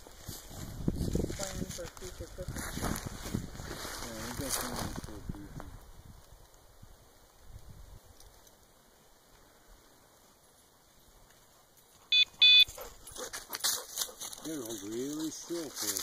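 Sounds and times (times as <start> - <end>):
loud signal tones: 12.1 - 12.7
person speaking: 14.4 - 16.0.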